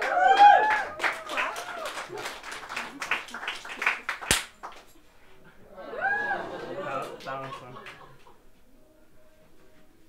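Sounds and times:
audience clapping: 0.0 - 5.0, 7.0 - 8.4
sharp loud clap: 3.1 - 4.9.

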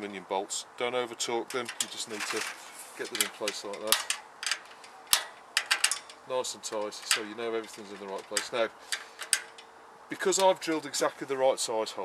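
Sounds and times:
sharp metallic clicks of nut tightening: 1.5 - 9.7.

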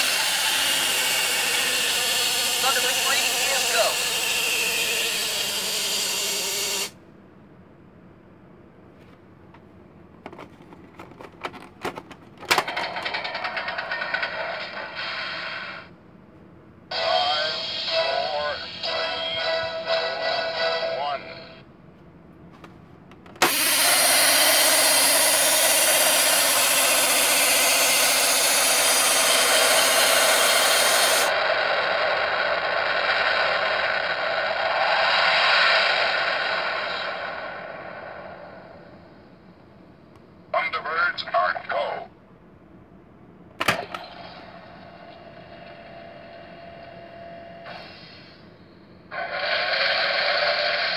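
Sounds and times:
toy voice clips: 0.0 - 6.9
loud launch rumble: 31.3 - 39.3.

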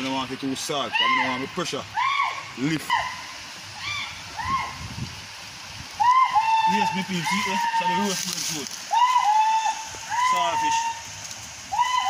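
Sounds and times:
rushing water: 0.0 - 12.0.

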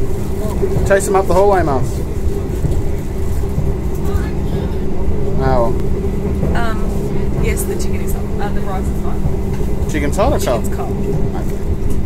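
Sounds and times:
train hum: 0.0 - 12.0
train low rumble: 0.0 - 12.0.

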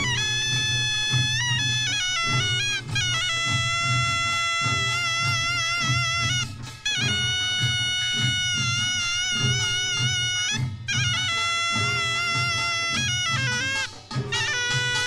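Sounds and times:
reed wind instrument melody: 0.0 - 15.0
steady drum beat: 0.0 - 15.0.

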